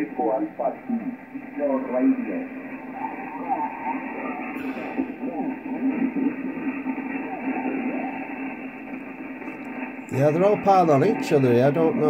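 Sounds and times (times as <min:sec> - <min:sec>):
garbled radio voices: 0:00.0 - 0:12.0
radio hiss: 0:00.0 - 0:12.0
steady low tone: 0:04.2 - 0:10.2.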